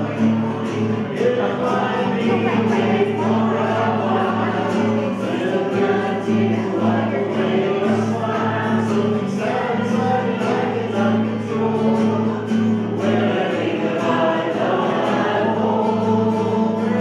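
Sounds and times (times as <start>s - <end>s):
acoustic guitar: 0.0s - 17.0s
group singing a worship song: 0.0s - 17.0s.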